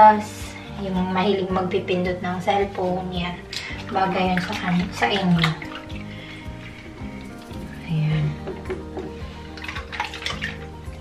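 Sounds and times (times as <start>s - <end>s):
background music: 0.0s - 11.0s
water splashing in sink: 1.0s - 11.0s.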